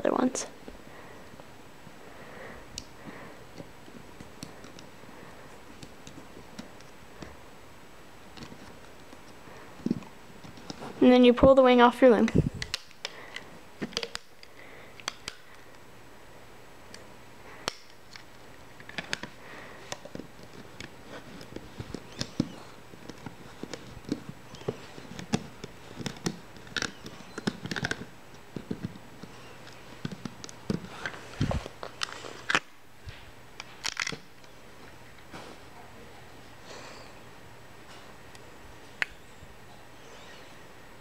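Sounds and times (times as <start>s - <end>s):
faint low hum: 0.0s - 41.0s
rubber bands clicking on plastic: 17.6s - 31.2s.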